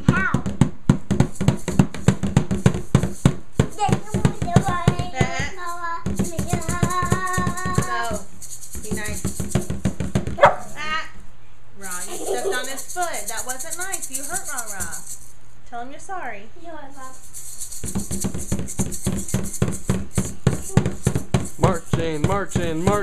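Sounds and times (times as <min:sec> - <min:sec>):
drum beaten in quick rhythm: 0:00.0 - 0:11.0, 0:11.8 - 0:15.3, 0:17.1 - 0:23.0
small child singing wordless notes: 0:03.7 - 0:08.2.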